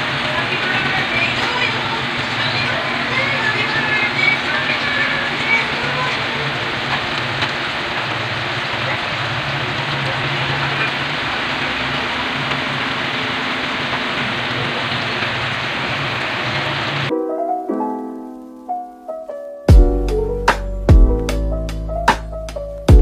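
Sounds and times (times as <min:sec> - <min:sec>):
food sizzling in a metal pan: 0:00.0 - 0:17.1.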